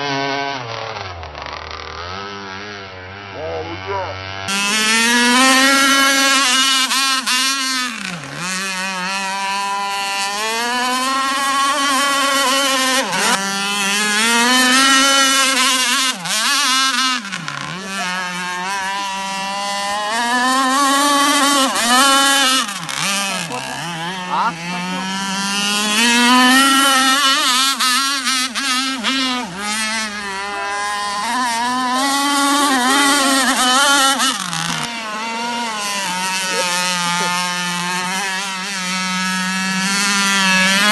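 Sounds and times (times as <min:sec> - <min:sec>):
boat engine running at high speed: 0:00.0 - 0:40.9.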